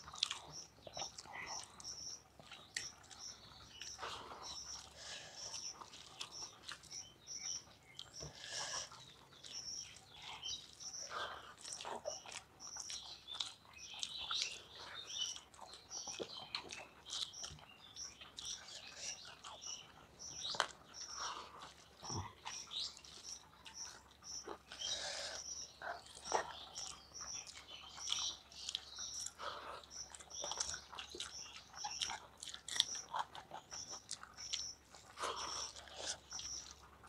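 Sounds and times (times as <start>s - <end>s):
bird chirping: 0.0s - 37.0s
chewing and lip-smacking: 0.0s - 37.0s.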